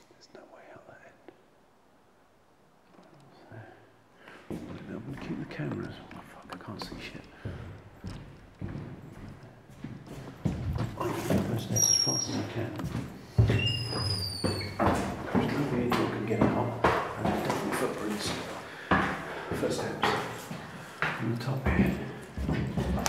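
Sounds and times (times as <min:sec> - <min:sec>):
heavy breathing: 0:03.3 - 0:04.8, 0:05.9 - 0:08.9, 0:18.2 - 0:21.2
hurried footsteps on stairs: 0:04.4 - 0:23.0.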